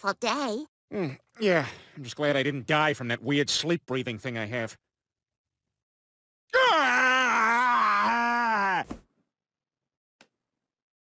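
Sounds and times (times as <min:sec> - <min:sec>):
cartoon man screaming: 0:06.5 - 0:08.8.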